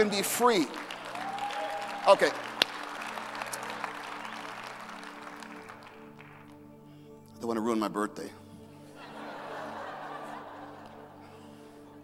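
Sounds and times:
audience applause: 0.0 - 6.4.

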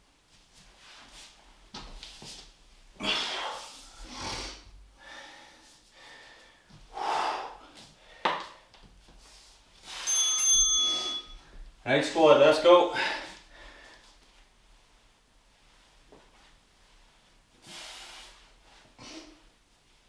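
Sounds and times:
man breathing hard: 3.0 - 8.7, 12.9 - 14.2
electronic timer beep: 10.0 - 11.4.

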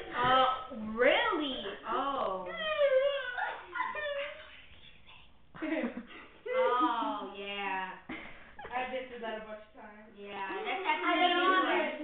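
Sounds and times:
girls whining voices: 1.8 - 4.6.

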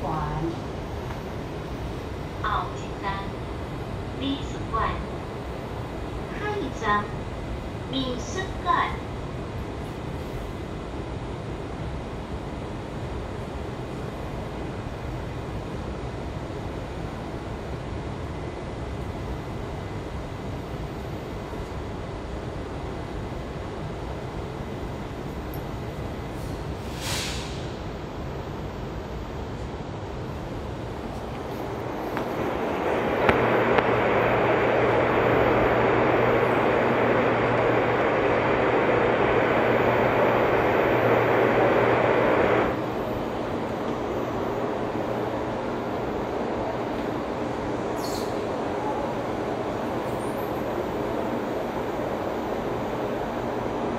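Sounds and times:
station background noise: 0.0 - 53.9
train rushing and rumbling: 0.0 - 53.9.

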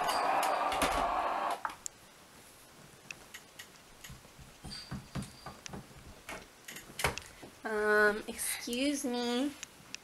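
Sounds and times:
person speaking: 7.6 - 9.6.

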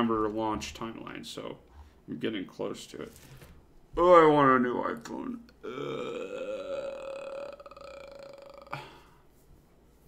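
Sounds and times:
man groaning: 5.6 - 9.1.

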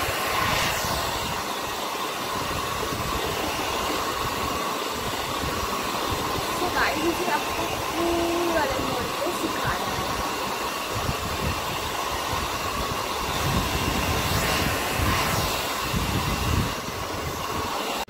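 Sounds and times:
hair dryer blowing air: 0.0 - 18.0.

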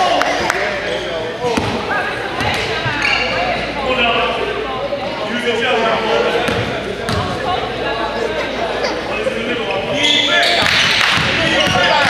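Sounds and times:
indistinct voices echoing: 0.0 - 12.0.

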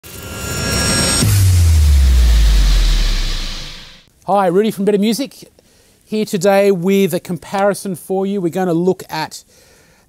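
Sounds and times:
rising whoosh with high tones: 0.0 - 4.1
deep bass boom: 0.1 - 4.1.

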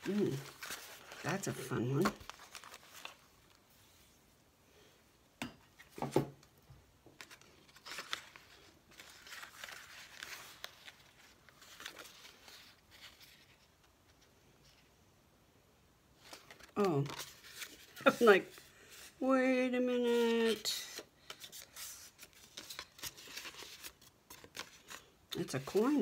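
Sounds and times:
paper rustling and crinkling: 0.0 - 4.0, 7.1 - 14.9, 16.2 - 19.2, 20.0 - 26.0.

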